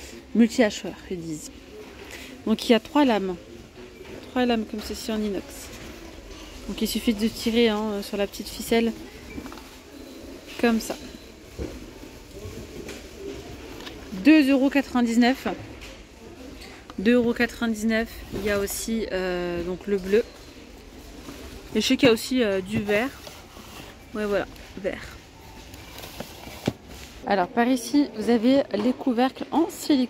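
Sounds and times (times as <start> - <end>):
shop background hum: 0.0 - 30.0.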